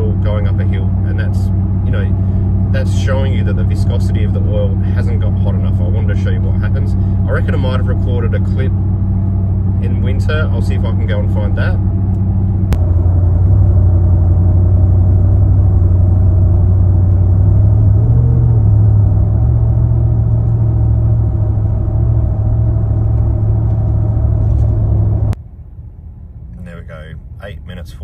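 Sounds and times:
engine drone inside car: 0.0s - 28.0s
quiet cabin hum: 0.0s - 28.0s.

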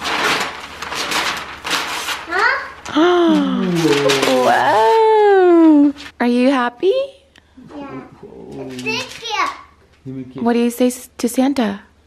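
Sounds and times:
wrapping paper tearing: 0.0s - 5.0s, 8.6s - 9.3s.

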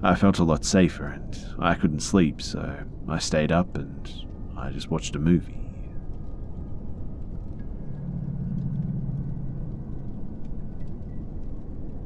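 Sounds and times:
low droning hum: 0.0s - 12.0s
low rumble: 0.0s - 12.0s.

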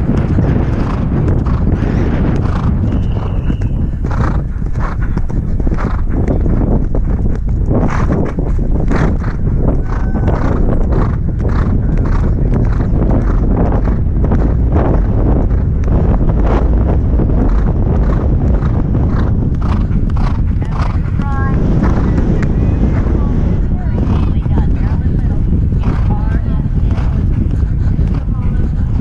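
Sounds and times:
horse hoofbeats galloping: 0.0s - 29.0s
wind rumble on microphone: 0.0s - 29.0s.

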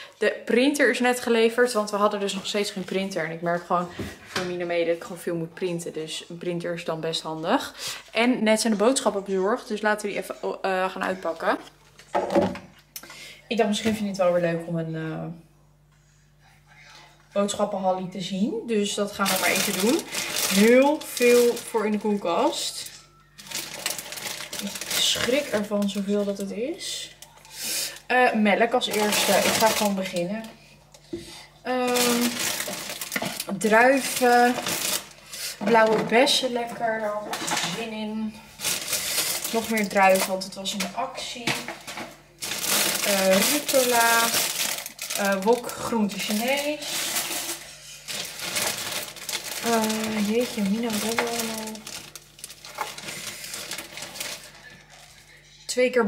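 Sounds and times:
plastic packaging rustling: 18.9s - 30.5s, 31.7s - 55.4s.

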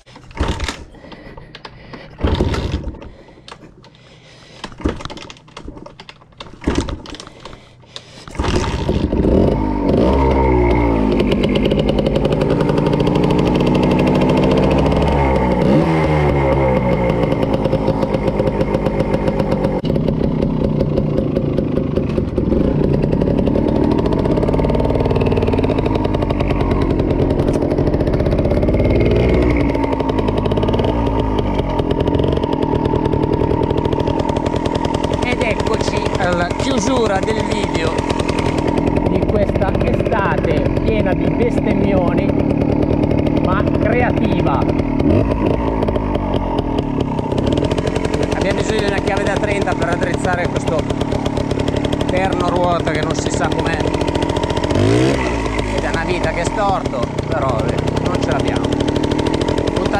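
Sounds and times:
dirt bike engine revving: 0.0s - 3.3s, 8.3s - 59.9s.

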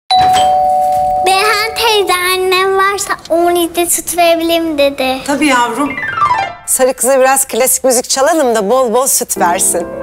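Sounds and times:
two-note doorbell chime: 0.1s - 1.4s.

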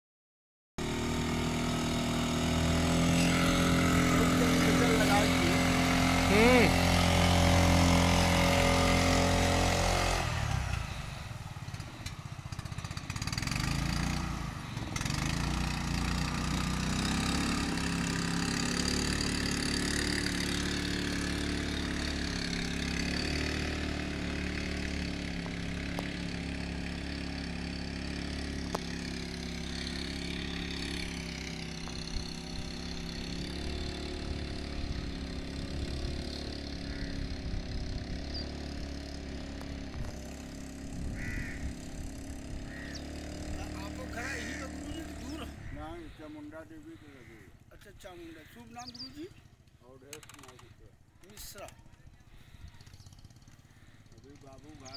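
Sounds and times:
motorboat engine: 0.8s - 54.9s.

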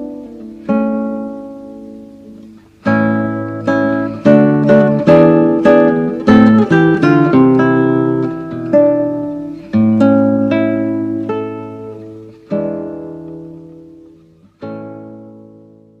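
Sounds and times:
acoustic guitar playing: 0.0s - 16.0s.

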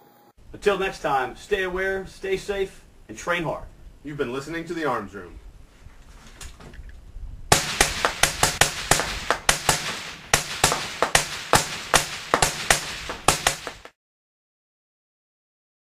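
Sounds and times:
rifles firing rapid shots: 7.5s - 13.9s.

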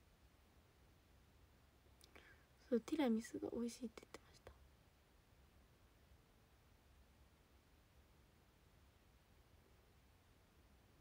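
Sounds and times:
person speaking softly: 2.0s - 4.7s.

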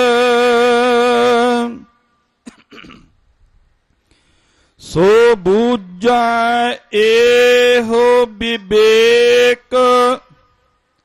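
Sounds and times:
man clearing his throat: 2.4s - 3.1s.

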